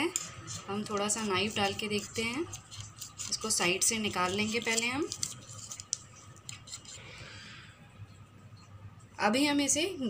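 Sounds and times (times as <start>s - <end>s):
knife scraping steel bowl: 0.0s - 7.1s.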